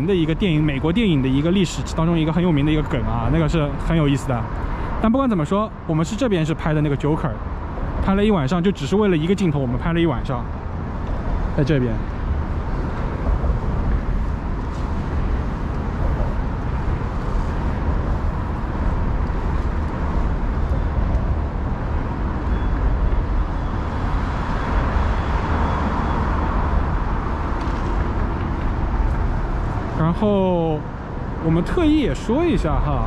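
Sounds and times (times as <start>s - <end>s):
city traffic rumble: 0.0s - 33.0s.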